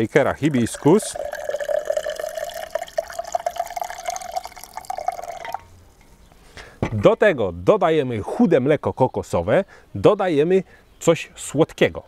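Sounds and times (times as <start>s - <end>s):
tea pouring into shaker: 0.5s - 5.7s.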